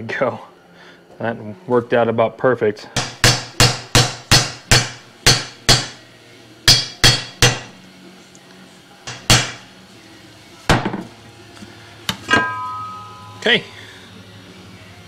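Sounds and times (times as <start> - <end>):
hammer striking steel socket: 12.1 - 13.5.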